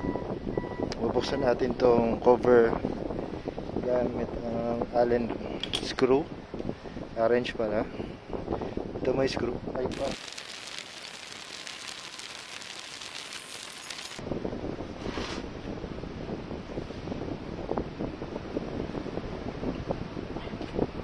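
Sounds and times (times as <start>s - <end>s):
wind rumbling on microphone: 0.0s - 21.0s
steady hiss: 9.9s - 14.2s.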